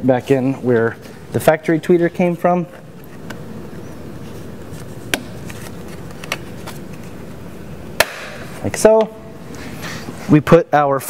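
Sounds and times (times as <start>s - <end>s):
faint clicks and handling noise: 4.2s - 7.2s.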